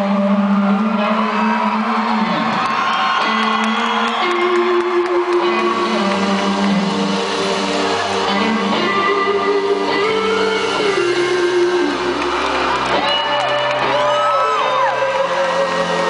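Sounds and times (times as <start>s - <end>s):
live band music: 0.0s - 16.0s.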